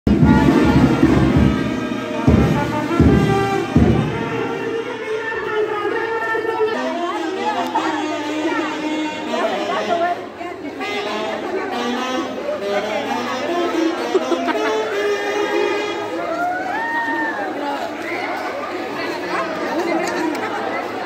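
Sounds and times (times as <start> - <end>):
brass band music: 0.0 - 16.3
crowd chatter: 0.0 - 21.0
loud drum beats: 0.1 - 5.0.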